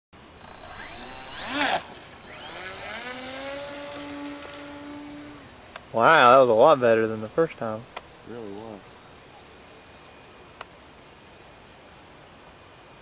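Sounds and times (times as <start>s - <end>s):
electric motor and propeller whining: 0.4s - 10.0s.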